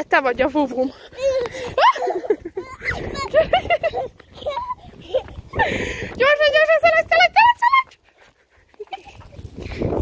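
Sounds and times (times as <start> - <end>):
toddler babbling and squealing: 1.0 - 3.4, 4.3 - 5.5.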